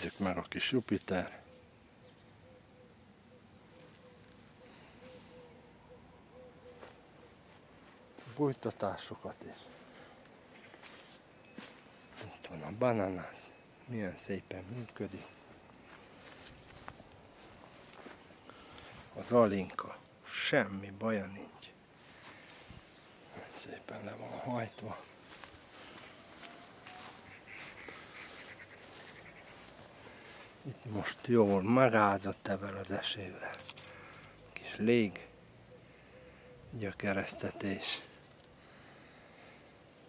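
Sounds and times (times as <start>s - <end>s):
distant birds chirping: 0.0s - 40.0s
footsteps on grass: 6.6s - 8.6s, 9.6s - 13.2s, 14.5s - 19.8s, 21.9s - 31.9s.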